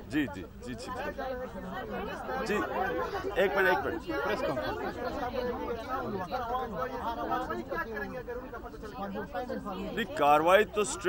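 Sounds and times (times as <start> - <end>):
overlapping indistinct chatter: 0.0 - 11.0.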